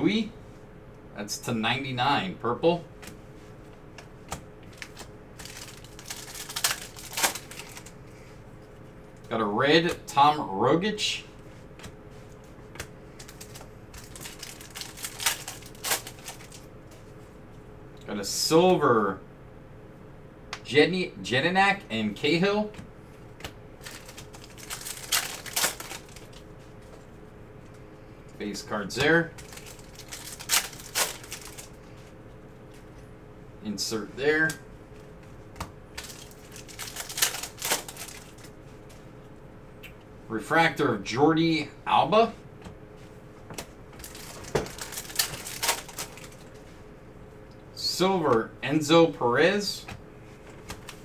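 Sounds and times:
foil wrapper crinkling: 4.6s - 8.0s, 13.1s - 16.7s, 23.8s - 26.5s, 29.4s - 31.9s, 35.9s - 38.6s, 44.0s - 46.6s
foil pack tearing open: 4.8s - 7.9s, 13.2s - 16.6s, 23.8s - 26.4s, 29.4s - 31.8s, 36.0s - 38.4s, 44.0s - 46.5s.

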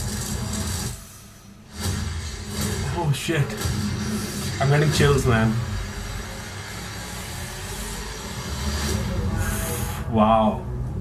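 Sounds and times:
dark low rumble: 0.0s - 11.0s.

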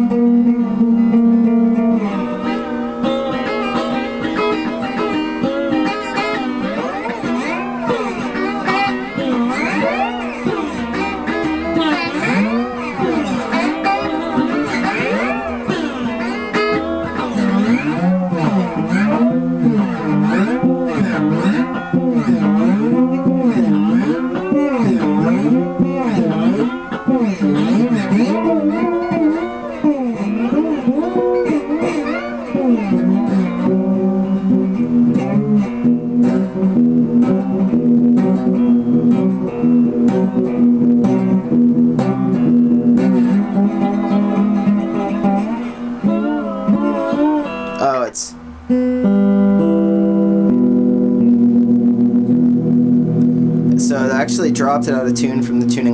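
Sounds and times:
guitar music: 0.0s - 55.9s.

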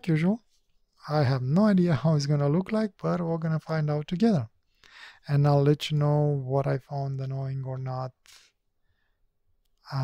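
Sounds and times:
person speaking: 0.0s - 8.6s, 9.8s - 10.0s
man breathing: 4.7s - 5.2s.

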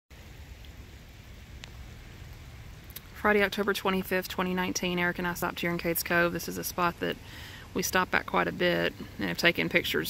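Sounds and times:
light rain hiss: 0.1s - 10.0s.

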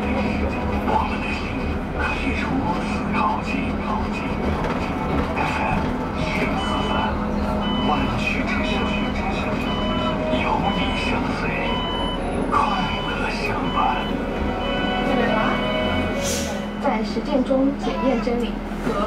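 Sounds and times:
bus running noise: 0.0s - 19.0s.

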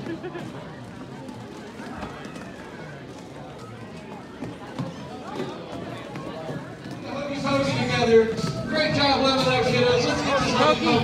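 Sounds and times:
children's voices and chatter: 0.0s - 11.0s.

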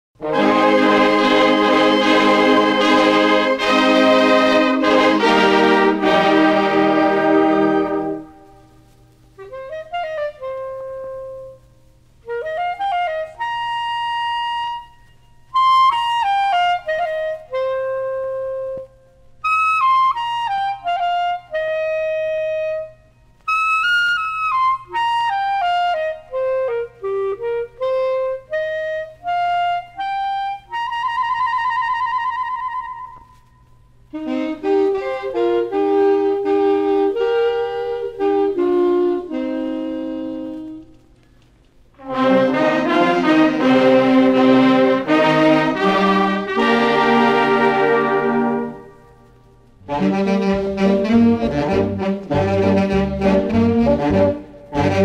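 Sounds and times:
wind band harmony: 0.2s - 33.4s, 34.0s - 41.0s, 42.0s - 55.0s
faint steady hum: 0.2s - 55.0s
solo clarinet: 0.2s - 55.0s.

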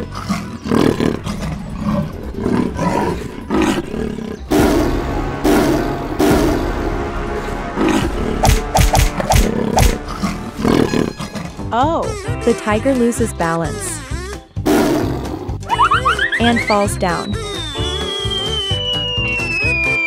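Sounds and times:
lion roaring: 0.0s - 6.8s, 7.5s - 8.4s
background music: 0.0s - 20.0s.

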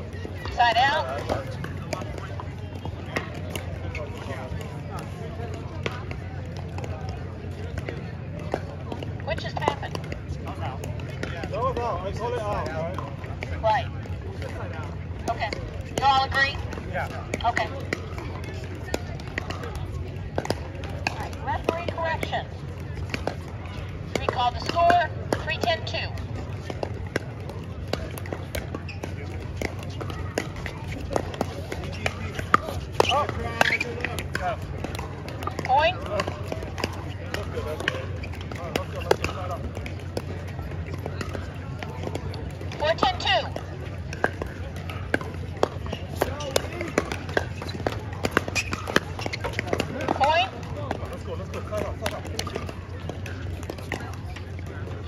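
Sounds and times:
people talking: 0.0s - 26.6s, 27.2s - 55.0s.

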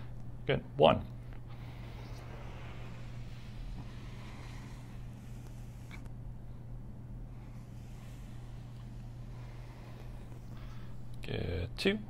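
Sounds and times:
low room hum: 0.0s - 12.0s
hand brushing across wall: 1.4s - 6.6s, 7.2s - 11.1s.

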